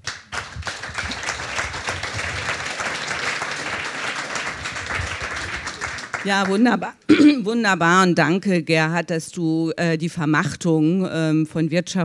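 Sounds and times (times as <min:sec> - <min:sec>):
audience applause: 0:00.0 - 0:06.6.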